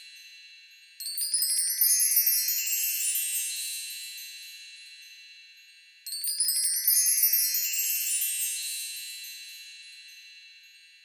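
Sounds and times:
tinkling magic chime: 0.0s - 11.0s.

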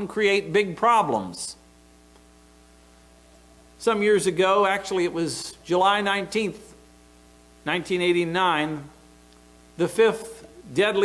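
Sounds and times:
man speaking: 0.0s - 1.6s, 3.8s - 6.8s, 7.6s - 9.0s, 9.8s - 11.0s
electrical hum: 0.0s - 11.0s.

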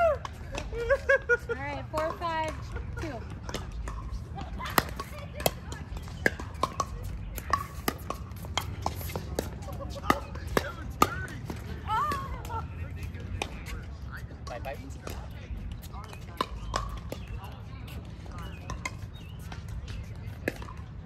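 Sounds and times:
ball bouncing on hard court: 1.8s - 12.4s
paddles striking pickleball: 1.8s - 13.8s, 14.4s - 20.9s.

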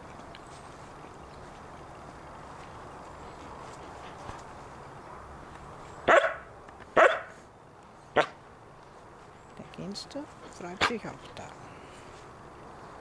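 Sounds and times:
dog barking: 6.1s - 7.4s, 8.2s - 8.4s.

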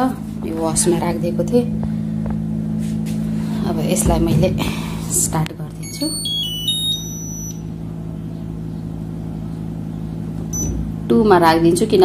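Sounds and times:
steady low hum: 0.0s - 12.0s
electronic chime: 5.8s - 7.7s
short high beep: 5.9s - 7.6s.

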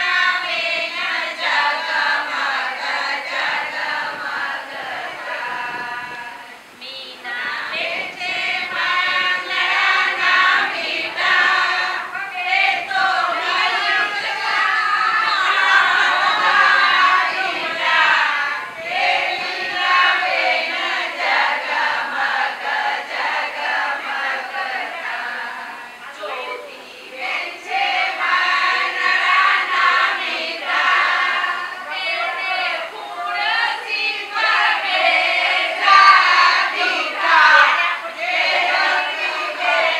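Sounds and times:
women singing together: 0.0s - 39.9s.

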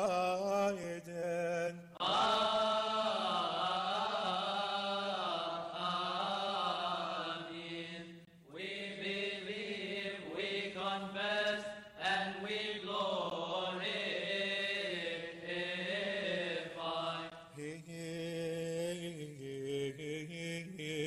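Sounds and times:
man chanting a prayer: 0.0s - 2.0s, 17.5s - 21.0s.

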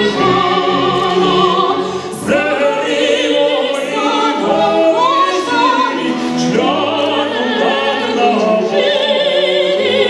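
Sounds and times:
operatic singing with vibrato: 0.0s - 10.0s
symphony orchestra: 0.0s - 10.0s.

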